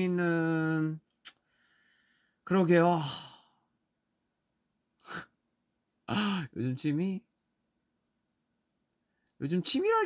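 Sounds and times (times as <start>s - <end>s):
man talking: 0.0s - 1.0s, 2.4s - 3.5s, 6.1s - 7.3s, 9.4s - 10.0s
man sighing: 6.1s - 6.5s.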